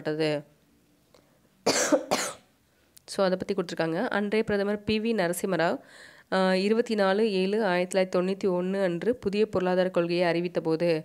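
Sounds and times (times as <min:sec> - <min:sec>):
woman coughing: 0:01.6 - 0:02.5.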